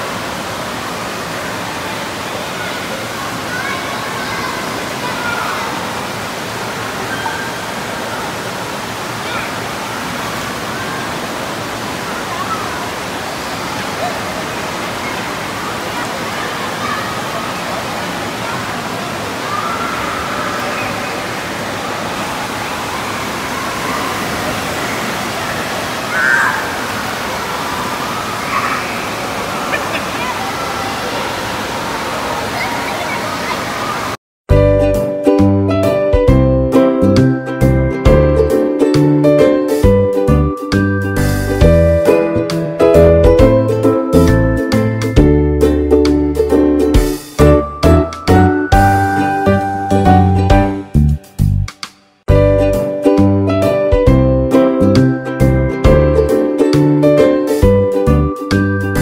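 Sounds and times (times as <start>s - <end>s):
churning water rushing: 0.0s - 34.2s, 35.0s - 51.4s, 52.6s - 59.0s
distant voices of children and adults: 1.5s - 6.2s, 6.8s - 25.2s, 27.8s - 34.2s.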